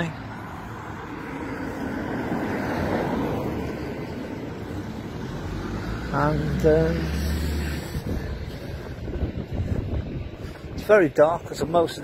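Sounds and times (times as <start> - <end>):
street traffic noise: 0.0 - 12.0
vehicle passing: 0.0 - 12.0.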